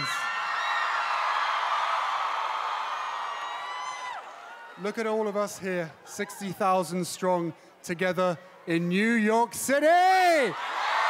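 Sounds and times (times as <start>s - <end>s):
large crowd cheering: 0.0s - 6.6s, 9.7s - 11.0s.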